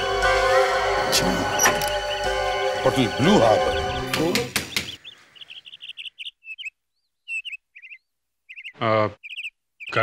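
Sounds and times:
small birds chirping: 1.5 - 10.0.

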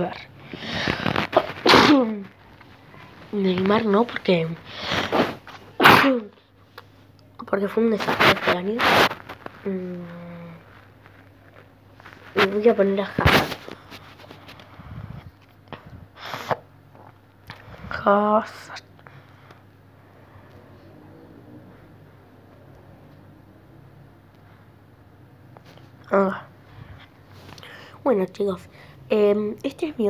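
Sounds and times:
girl coughing: 1.4 - 2.2, 5.8 - 6.3.

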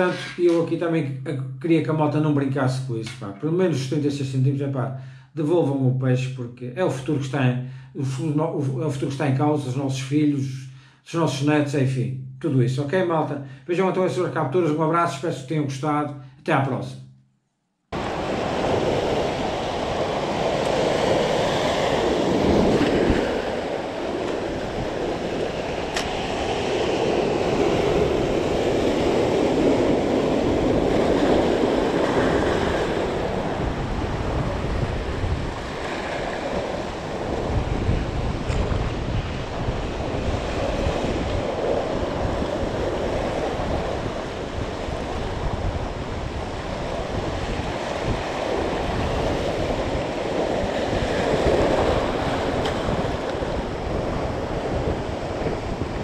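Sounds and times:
surf breaking over rocks: 18.0 - 56.0
wind buffeting microphone: 18.0 - 56.0.

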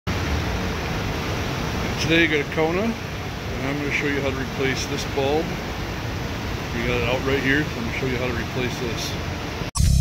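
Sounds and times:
steady rushing noise: 0.1 - 10.0.

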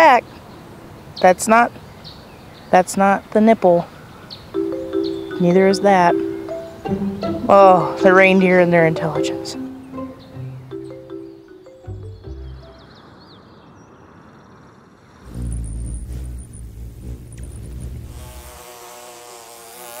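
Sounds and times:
held music notes: 4.5 - 13.0
bumblebee buzzing: 4.6 - 10.2, 15.2 - 20.0
hummingbird wing hum: 4.6 - 10.2, 15.0 - 20.0.

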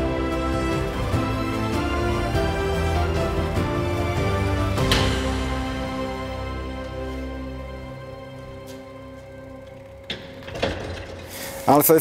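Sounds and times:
soft background music: 0.0 - 11.3
steel door moving: 0.8 - 11.9.

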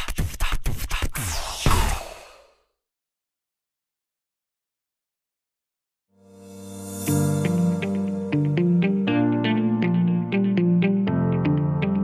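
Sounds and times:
whooshing sweep: 1.2 - 2.5.

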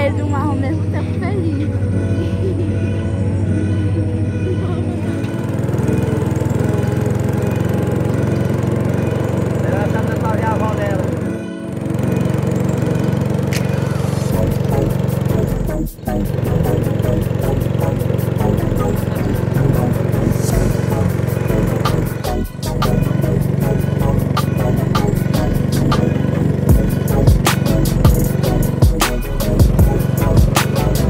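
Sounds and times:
background music: 0.0 - 31.0
boat motor drone: 0.0 - 31.0.

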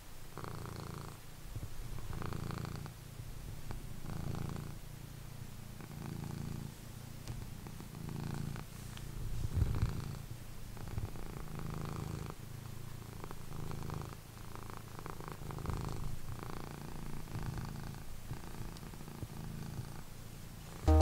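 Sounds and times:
cat purring: 0.2 - 20.9.

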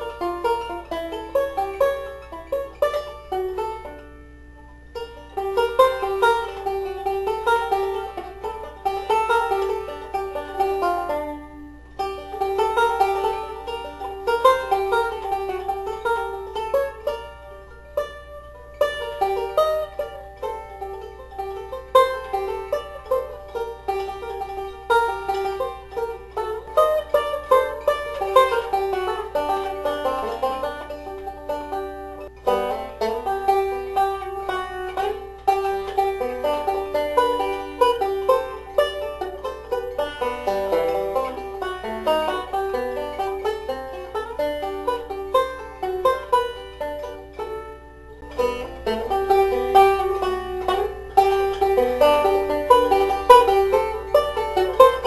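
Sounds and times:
banjo plucking: 0.0 - 55.0.

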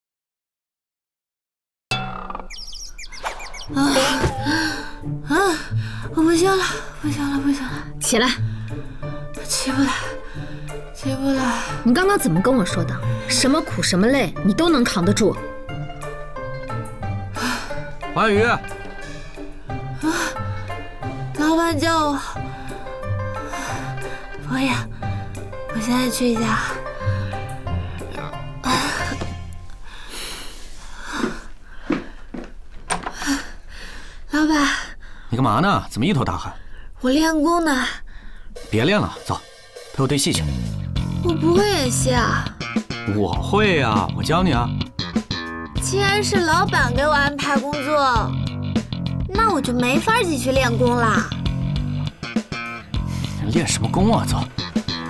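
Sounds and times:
high downward bird chirps: 1.9 - 4.5
woman grunting with effort: 3.7 - 4.6
woman breathing hard: 3.9 - 6.2, 10.0 - 10.8, 17.3 - 17.9, 26.8 - 35.3, 38.0 - 38.6.

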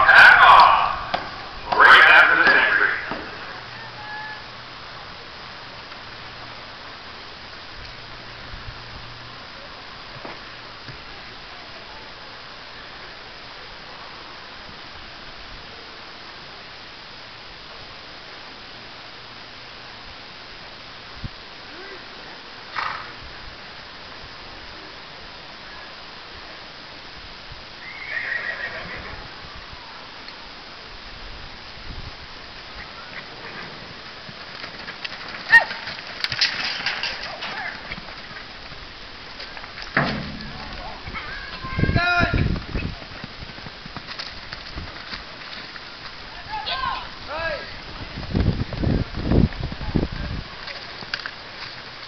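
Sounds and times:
outdoor background hiss: 0.0 - 52.0
horse whinnying: 27.8 - 29.2
faint hoofbeats on dirt: 32.4 - 52.0.

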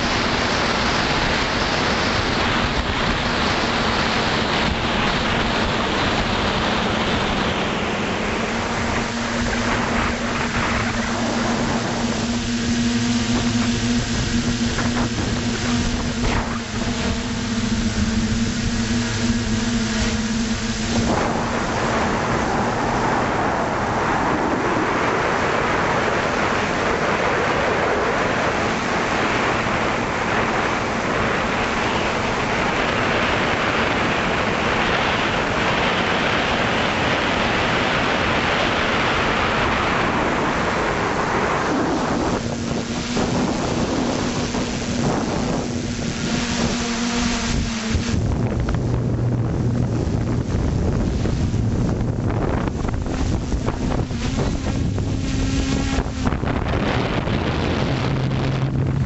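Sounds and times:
drone propellers humming: 0.0 - 59.0
wind on microphone: 0.0 - 59.0.

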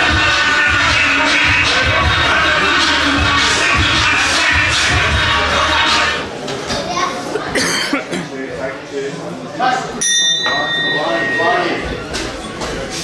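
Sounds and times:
ring bell struck: 10.0 - 12.0.

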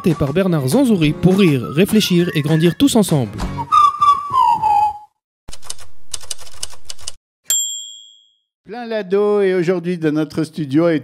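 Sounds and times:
falling whistle glide: 3.6 - 5.1
typewriter bell ding: 7.5 - 8.4.

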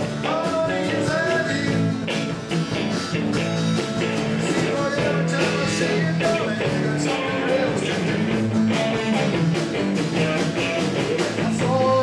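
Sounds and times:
drum hits: 0.0 - 12.0
rock band playing: 0.0 - 12.0.

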